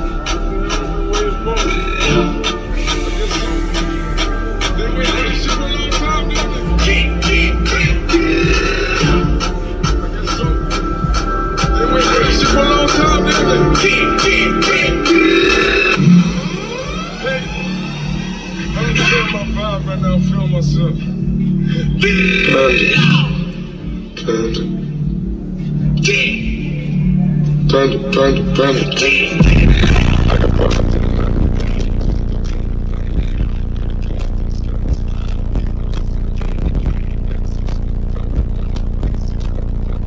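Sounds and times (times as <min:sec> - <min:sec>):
bass-heavy music with vocals: 0:00.0 - 0:40.0
sliding tones over pulsing bass: 0:00.0 - 0:40.0.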